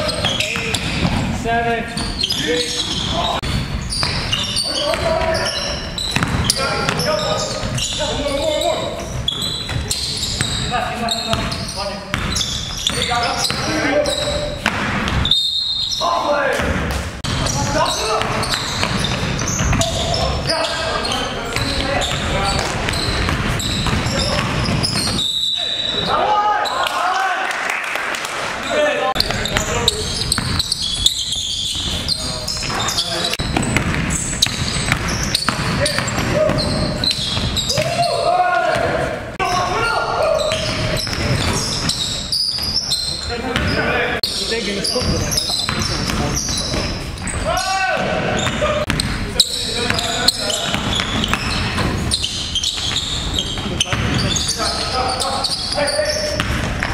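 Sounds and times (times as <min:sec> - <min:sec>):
basketball bouncing on wooden floor: 0:02.0 - 0:05.4, 0:06.0 - 0:08.0, 0:11.3 - 0:15.3, 0:18.2 - 0:20.2, 0:21.5 - 0:25.2, 0:29.2 - 0:32.0, 0:32.6 - 0:38.0, 0:45.0 - 0:47.4, 0:48.0 - 0:49.2, 0:49.8 - 0:54.4, 0:56.3 - 0:56.9
players shouting: 0:19.4 - 0:27.8, 0:35.3 - 0:41.7, 0:47.2 - 0:51.4.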